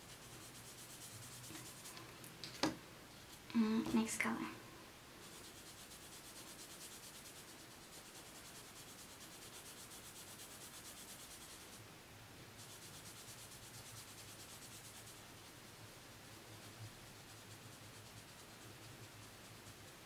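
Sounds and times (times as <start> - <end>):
sponge scrubbing on paper: 0.0 - 2.1, 5.2 - 11.8, 12.6 - 20.0.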